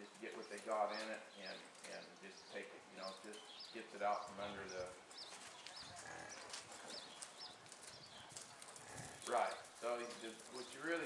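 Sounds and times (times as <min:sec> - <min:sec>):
horse hoofbeats in soft dirt: 0:04.8 - 0:11.0.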